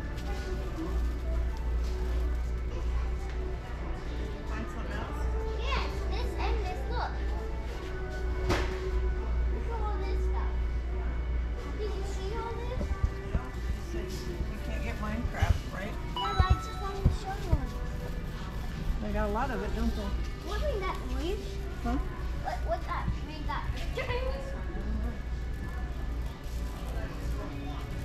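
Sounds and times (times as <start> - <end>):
chatter of shoppers and children: 0.0 - 28.0
store music: 0.0 - 28.0.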